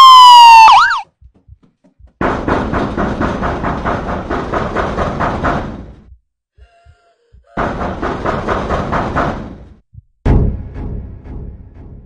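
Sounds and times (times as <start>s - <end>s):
loud pounding on a door: 2.0s - 6.2s, 7.6s - 10.6s.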